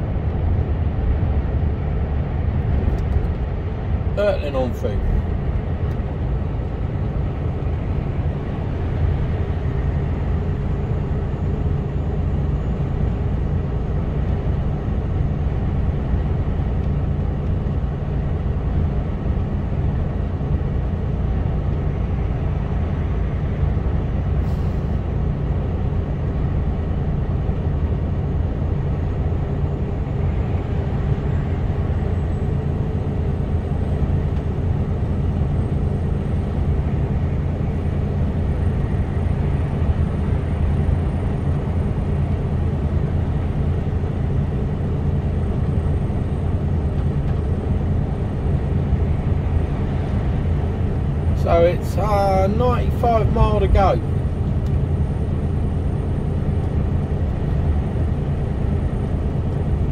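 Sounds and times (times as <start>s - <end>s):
diesel engine hum: 0.0s - 59.9s
road and tyre noise: 0.0s - 59.9s.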